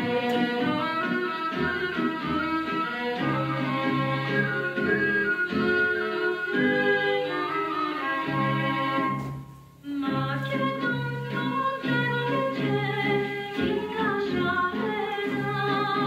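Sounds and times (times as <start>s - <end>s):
folk song instrumental melody: 0.0s - 16.0s.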